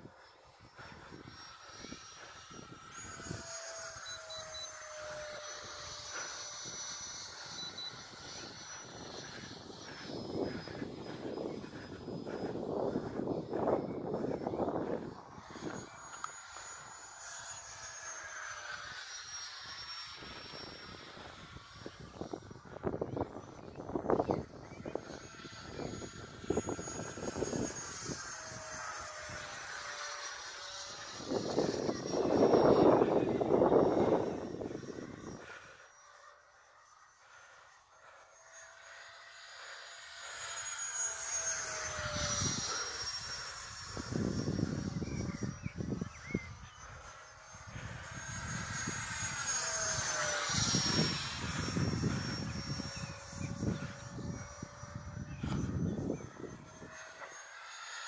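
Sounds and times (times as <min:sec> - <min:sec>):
model jet fan whining: 0:00.0 - 0:58.0.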